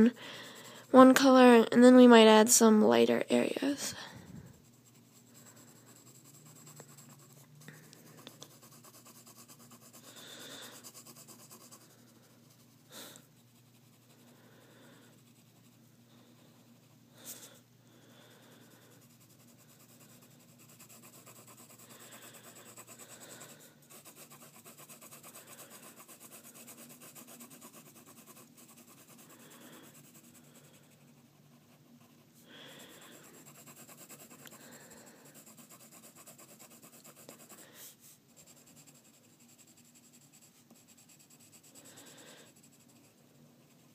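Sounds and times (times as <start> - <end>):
pencil scratching on paper: 0.0 - 1.9, 3.0 - 43.9.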